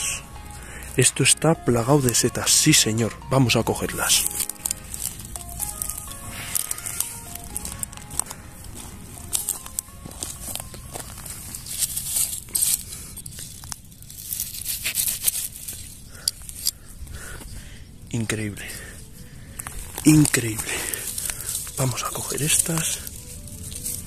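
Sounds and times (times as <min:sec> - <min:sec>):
background music: 0:00.0 - 0:12.8, 0:18.1 - 0:24.0
dry grass rustling and crackling: 0:00.0 - 0:24.0.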